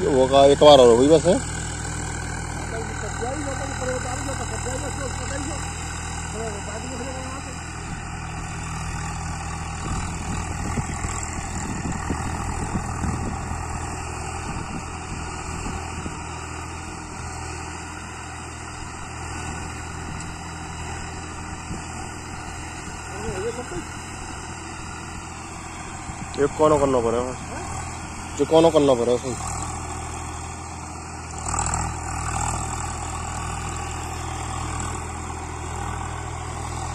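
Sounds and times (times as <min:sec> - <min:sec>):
tractor diesel engine running: 0:00.0 - 0:36.9.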